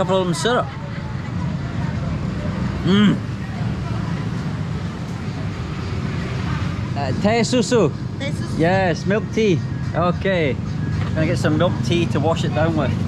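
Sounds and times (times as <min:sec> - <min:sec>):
street traffic rumble: 0:00.0 - 0:13.0
man humming mmm: 0:02.8 - 0:03.2.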